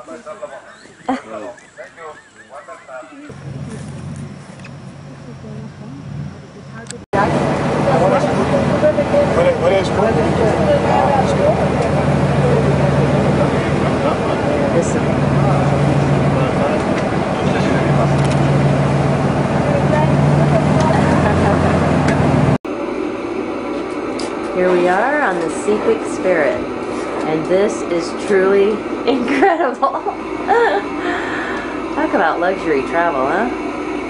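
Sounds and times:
indistinct voices: 0:00.0 - 0:04.2, 0:04.9 - 0:22.6
motorboat engine running: 0:00.8 - 0:34.0.

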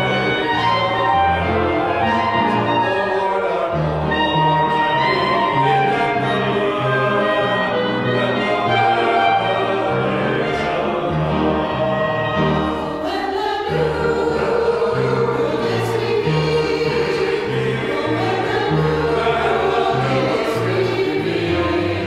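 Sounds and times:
choir singing held chords: 0:00.0 - 0:22.0.

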